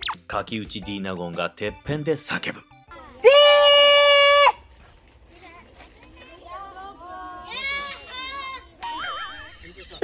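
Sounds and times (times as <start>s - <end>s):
woman shouting a high note: 3.2s - 4.6s.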